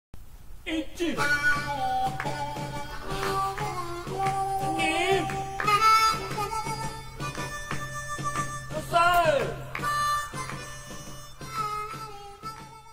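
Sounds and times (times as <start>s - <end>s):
harmonica music over a steady beat: 1.0s - 12.9s.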